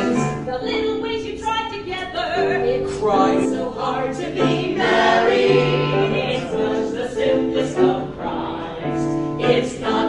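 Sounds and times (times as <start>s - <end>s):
choir singing long held notes: 3.1s - 10.0s.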